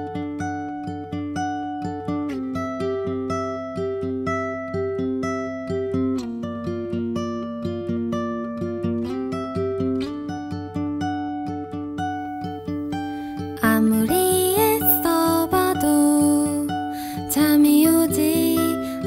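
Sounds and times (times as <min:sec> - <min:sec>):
plucked acoustic string instrument: 0:00.0 - 0:19.0.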